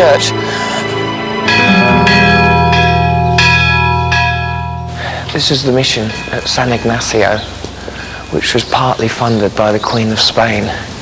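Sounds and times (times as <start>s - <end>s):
church bells ringing: 0.0s - 9.5s
deep sustained hum: 1.0s - 8.3s.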